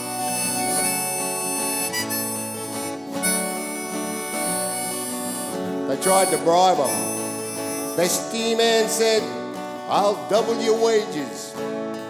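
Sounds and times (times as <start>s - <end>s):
harmonica playing held notes: 0.0s - 9.3s
acoustic guitars: 0.0s - 12.0s.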